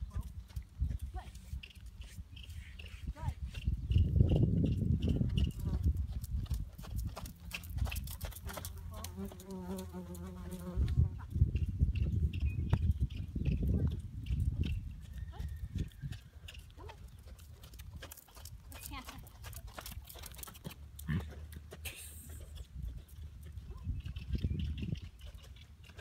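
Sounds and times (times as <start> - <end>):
wind on microphone: 0.0 - 8.1, 10.6 - 16.5, 22.7 - 25.3
hoofbeats in sand: 0.0 - 26.0.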